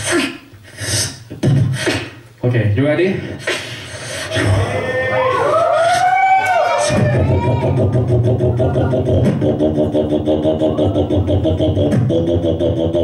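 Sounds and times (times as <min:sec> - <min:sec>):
beatboxing through microphone: 0:00.0 - 0:02.5, 0:03.1 - 0:04.9, 0:06.8 - 0:13.0.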